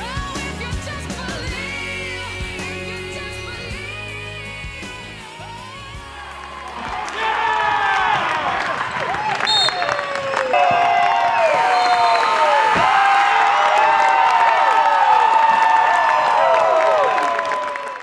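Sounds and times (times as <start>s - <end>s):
crowd cheering and screaming: 6.1s - 18.0s.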